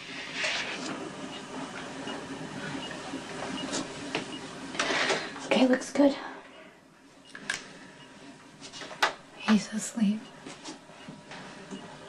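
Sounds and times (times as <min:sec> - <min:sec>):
heart monitor beeping: 0:00.8 - 0:04.9, 0:06.5 - 0:08.3, 0:09.0 - 0:12.0.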